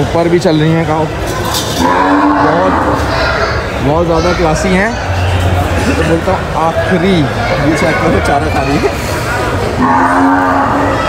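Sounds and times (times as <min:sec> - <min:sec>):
cow mooing: 0:01.7 - 0:03.1, 0:09.8 - 0:11.0.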